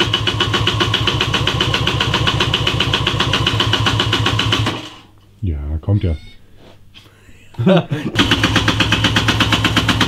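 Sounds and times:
motorcycle electric starter cranking: 0.0 - 5.1, 8.2 - 10.0.

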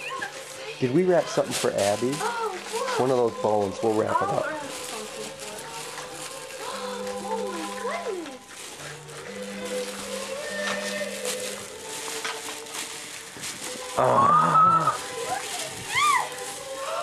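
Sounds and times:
plastic bag crinkling: 0.0 - 17.0.

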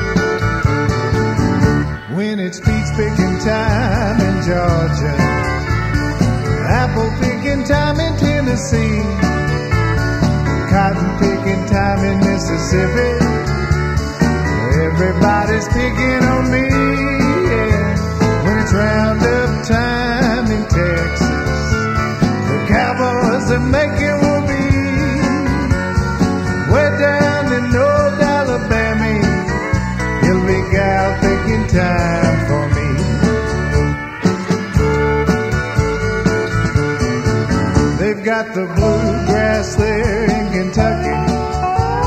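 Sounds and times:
country band playing: 0.0 - 42.0.

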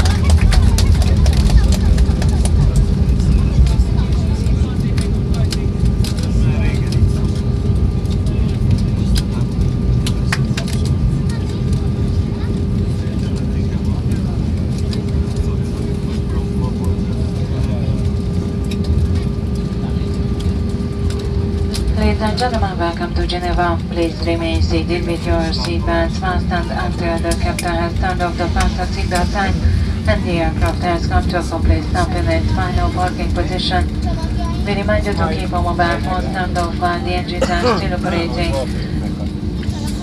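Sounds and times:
aircraft cabin rumble: 0.0 - 40.0
constant hum: 0.0 - 40.0.

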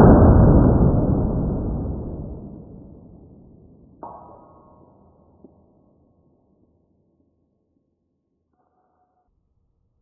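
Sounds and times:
slowed gunshot deep boom: 0.0 - 4.7.

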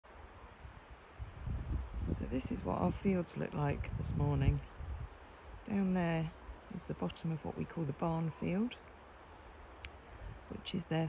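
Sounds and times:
wind buffeting microphone: 0.5 - 8.7, 9.9 - 11.0.

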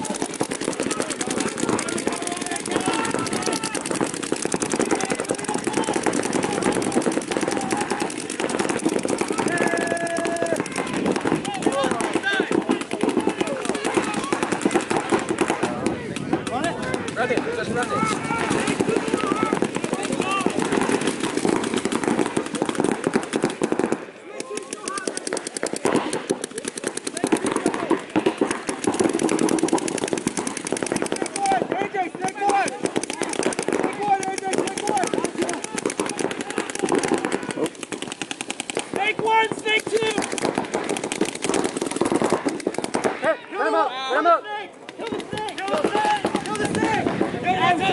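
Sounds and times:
paintball markers firing: 0.0 - 43.4, 44.8 - 47.9
players shouting: 0.0 - 47.9.

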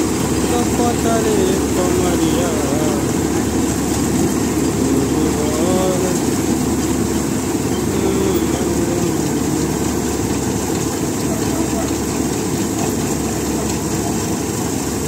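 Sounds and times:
combine harvester droning: 0.0 - 15.0.

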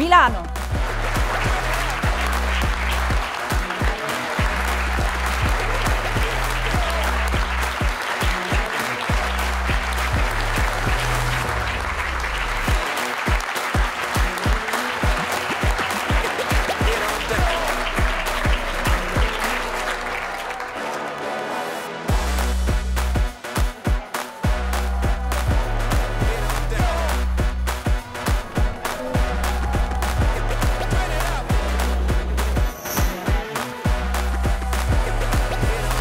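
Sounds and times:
music with heavy bass beat: 0.0 - 20.5, 22.1 - 36.0
audience applauding: 0.0 - 36.0.

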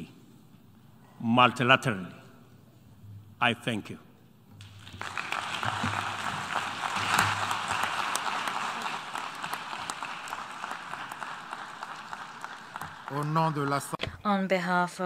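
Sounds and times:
audience applauding: 4.6 - 14.0.

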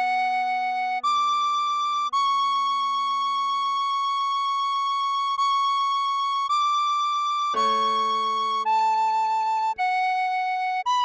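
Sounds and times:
tin whistle melody: 0.0 - 11.0
low keyboard chord: 7.6 - 9.8.

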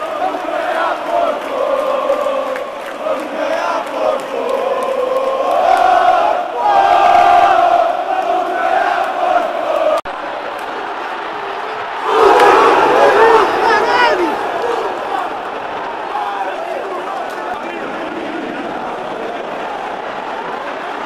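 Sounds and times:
crowd massed shouting: 0.0 - 21.0
stadium crowd singing chant: 0.0 - 21.0.

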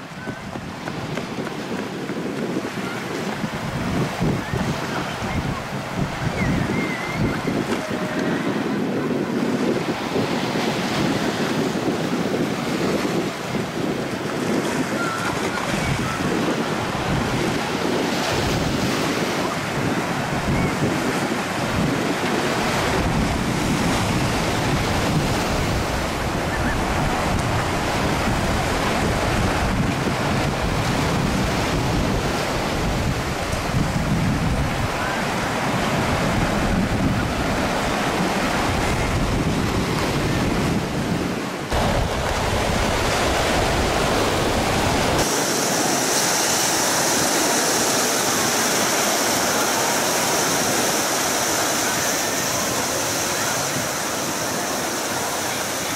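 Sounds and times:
surf washing onto shore: 0.0 - 55.9
wind buffeting microphone: 0.0 - 55.9.

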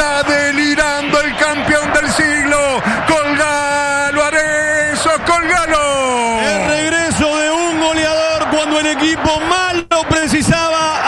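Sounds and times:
man yelling commentary: 0.0 - 11.0.

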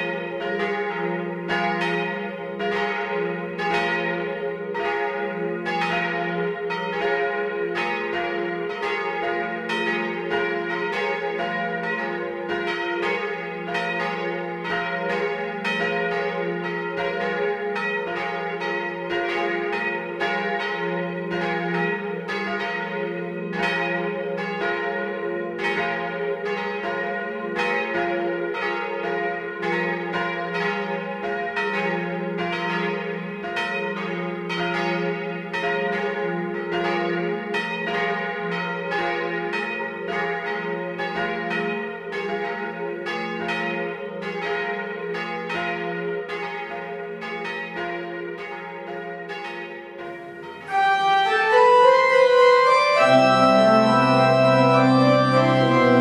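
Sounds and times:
church bells pealing: 0.0 - 56.0.

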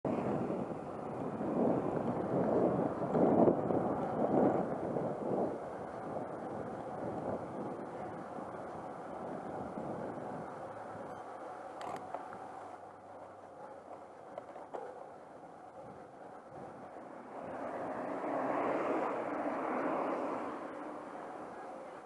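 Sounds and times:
wind on camera microphone: 0.1 - 12.1, 15.7 - 21.1
bike tyres rolling on asphalt: 0.1 - 22.0.

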